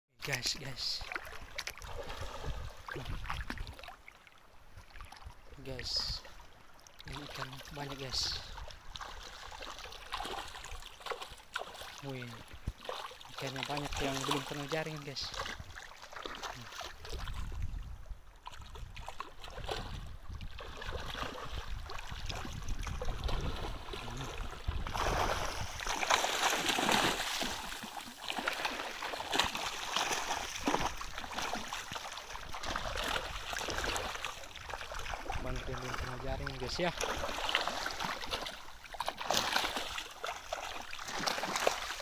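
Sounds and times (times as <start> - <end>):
muddy water splashing: 0.2 - 42.0
fish thrashing at water surface: 20.6 - 36.1, 36.9 - 42.0.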